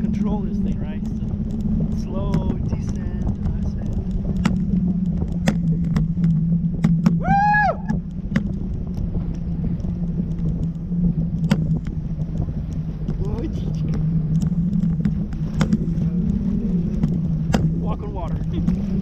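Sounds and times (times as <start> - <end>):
wind hum on parasail rig: 0.0 - 19.0
sharp clicks: 0.2 - 7.2, 7.9 - 18.9.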